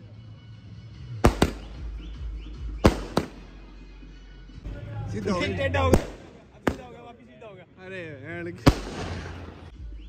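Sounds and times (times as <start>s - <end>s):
firework bangs: 1.2s - 2.1s, 2.8s - 3.6s, 5.9s - 7.0s, 8.6s - 9.7s.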